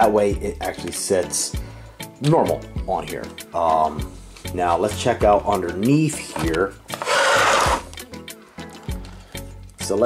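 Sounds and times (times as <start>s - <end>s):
plastic toy truck scraping: 6.4s - 7.9s.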